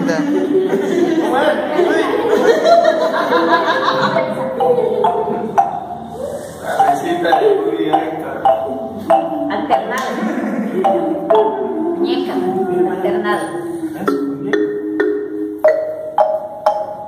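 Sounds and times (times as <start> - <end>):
marimba notes: 0.0 - 17.0.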